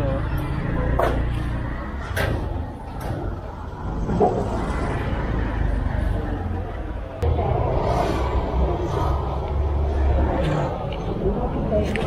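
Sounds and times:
city low rumble: 0.0 - 12.0.

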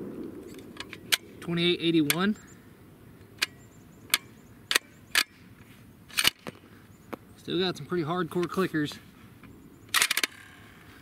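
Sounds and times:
rifle bolt metallic clicks: 3.3 - 5.4, 6.1 - 6.6, 9.9 - 10.4.

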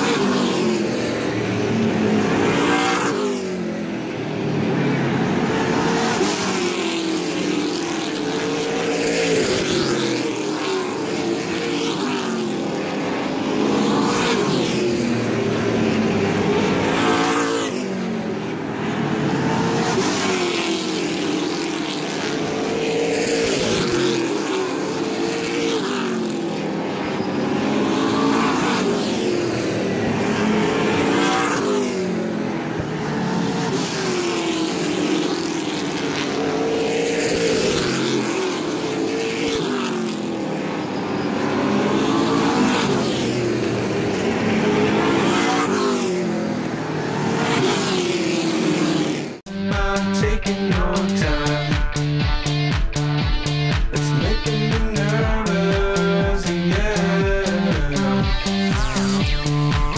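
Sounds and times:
race car engines: 0.0 - 59.9.

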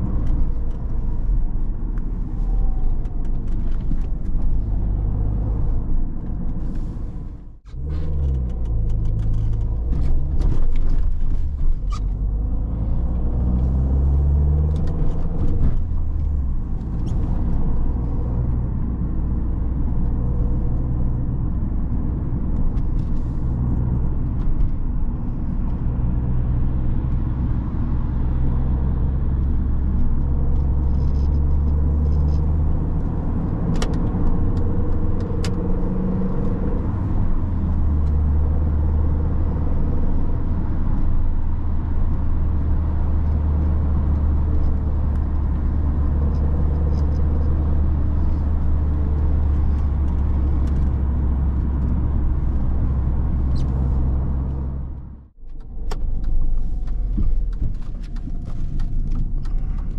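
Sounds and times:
car engine drone: 0.0 - 59.9
tyre and road noise: 0.0 - 59.9.

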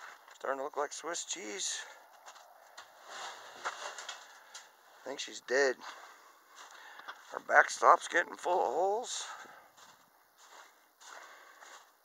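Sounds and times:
footsteps crunching in snow: 2.1 - 4.5, 5.8 - 7.6, 9.2 - 12.0.

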